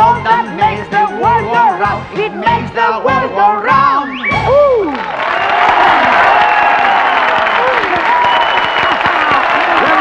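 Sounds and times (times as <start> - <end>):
audience applauding and cheering: 4.2 - 10.0.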